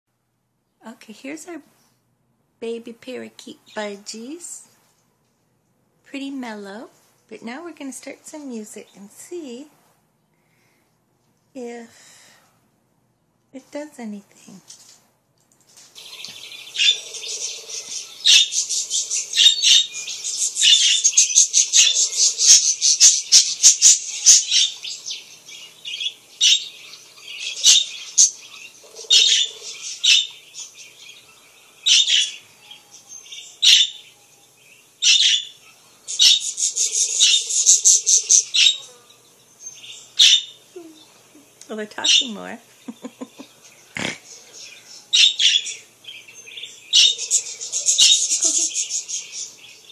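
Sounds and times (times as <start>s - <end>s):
budgerigars chirping: 16.0s - 39.0s, 39.6s - 40.7s, 42.0s - 49.9s.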